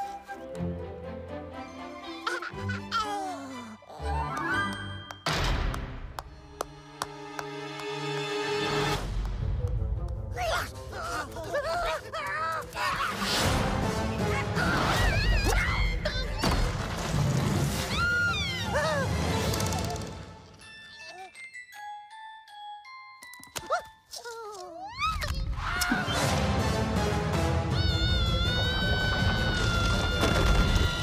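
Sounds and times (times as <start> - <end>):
background music: 0.0 - 31.0
cartoon squirrel wailing cry: 27.7 - 31.0.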